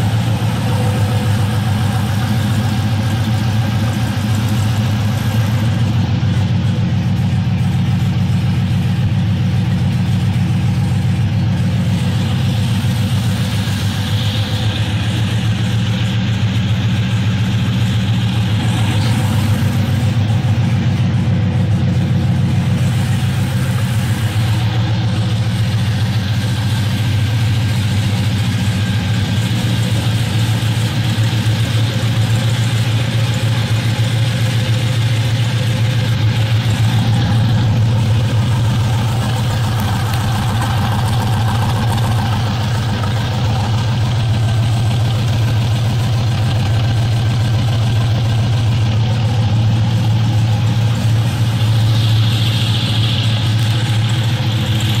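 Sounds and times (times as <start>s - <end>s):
car engine idling: 0.0s - 55.0s.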